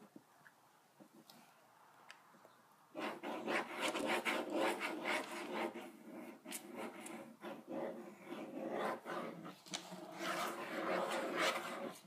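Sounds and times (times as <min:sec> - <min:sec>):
crayon scribbling on paper: 0:03.0 - 0:12.0.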